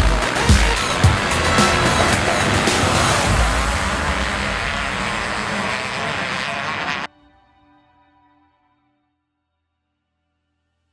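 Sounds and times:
motocross bike engines revving: 0.0s - 7.1s.

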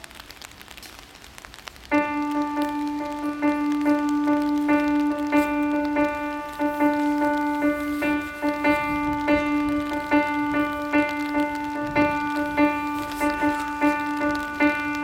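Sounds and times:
jazz piano: 1.9s - 15.0s.

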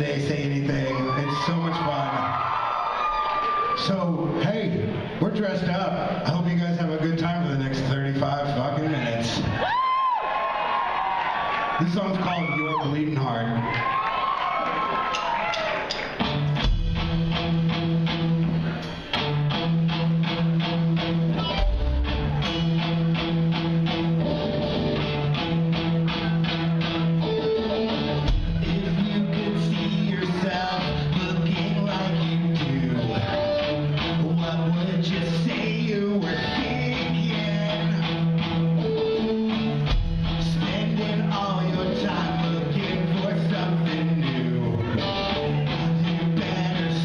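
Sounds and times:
bass guitar: 0.0s - 2.7s, 15.2s - 47.0s
drums: 0.0s - 47.0s
strummed electric guitar: 15.1s - 47.0s
drums in steady beat: 15.9s - 19.4s, 28.1s - 32.8s, 39.6s - 44.4s.

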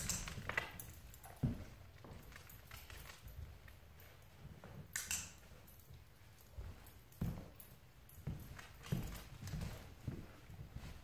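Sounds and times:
dog paws clicking on floor: 0.0s - 11.0s
footsteps on hardwood floor: 0.0s - 11.0s.

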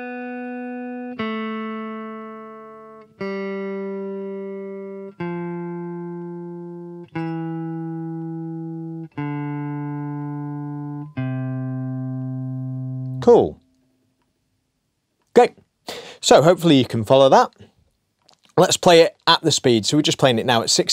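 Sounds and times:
electric guitar single picked notes: 0.0s - 13.8s.

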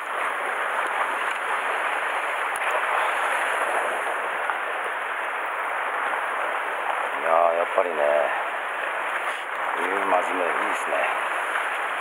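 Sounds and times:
surf washing over rocks: 0.0s - 12.0s.

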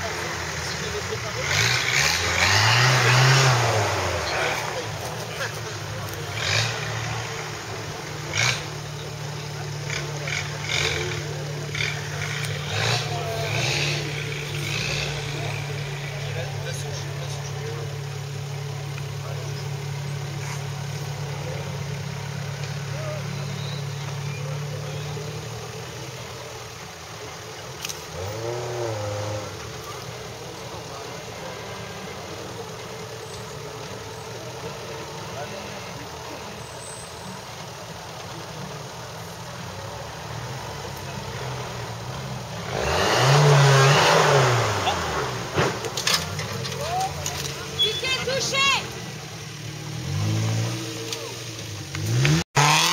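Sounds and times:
four-wheel drive engine revving: 0.0s - 52.9s
tyres scrabbling in dirt: 0.0s - 52.9s.

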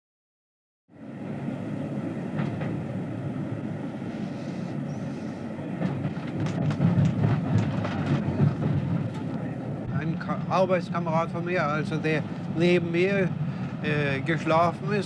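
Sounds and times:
train rumble: 0.9s - 15.0s
wheels clicking over rail joints: 5.8s - 9.5s.

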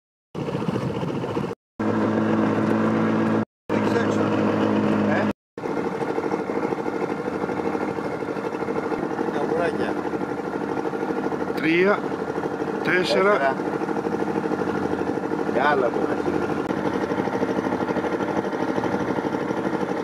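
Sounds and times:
boat engine running: 0.3s - 20.0s.

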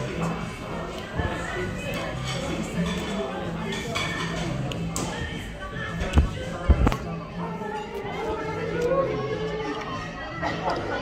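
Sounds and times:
background music: 0.0s - 11.0s
murmur of voices: 0.0s - 11.0s.

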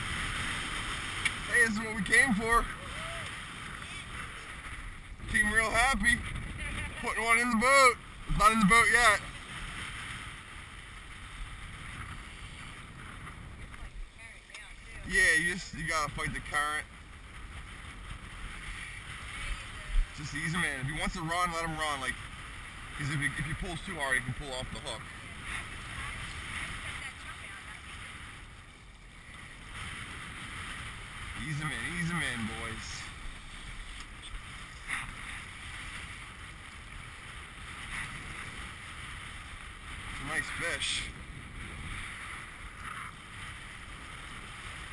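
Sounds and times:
water noise: 0.0s - 44.9s
wind: 0.0s - 44.9s
wind rumble on microphone: 0.0s - 44.9s.

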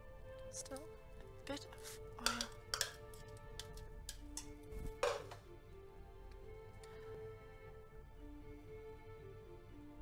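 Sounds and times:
soft background music: 0.0s - 10.0s
cookware clatter: 2.2s - 5.4s
cookware clinking: 2.2s - 5.4s.

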